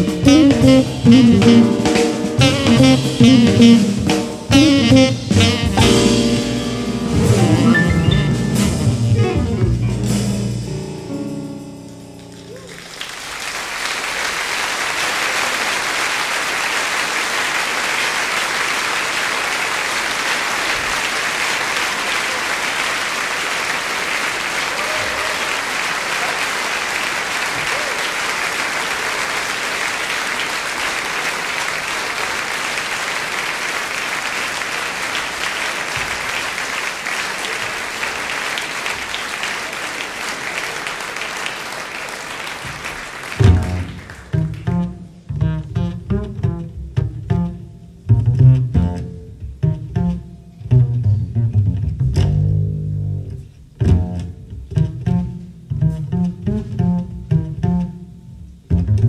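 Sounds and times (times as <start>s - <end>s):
audience applauding: 12.2s - 44.9s.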